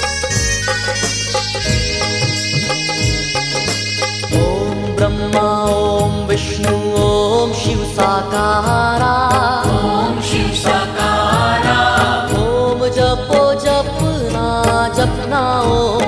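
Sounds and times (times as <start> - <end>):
steady beat: 0.0 - 5.4, 9.7 - 12.7
melodic instrumental backing: 0.0 - 16.0
man singing a devotional chant: 4.4 - 11.0, 12.2 - 16.0.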